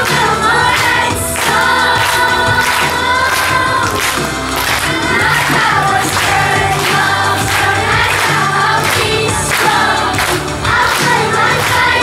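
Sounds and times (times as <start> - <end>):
children singing in unison: 0.0 - 12.0
musical accompaniment: 0.0 - 12.0.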